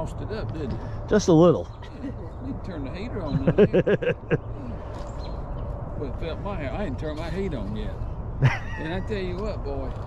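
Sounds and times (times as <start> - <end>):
low outdoor rumble: 0.0 - 10.0
person laughing: 3.3 - 4.4, 8.4 - 9.1.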